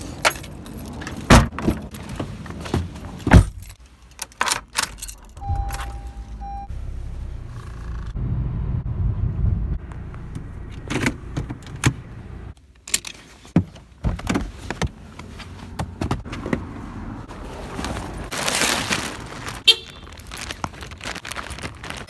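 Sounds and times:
car low rumble: 5.0s - 22.0s
objects rummaged clicking and rattling: 17.8s - 22.0s.

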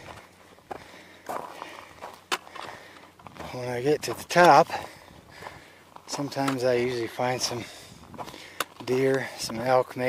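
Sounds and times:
footsteps on gravel trail: 0.0s - 10.0s.

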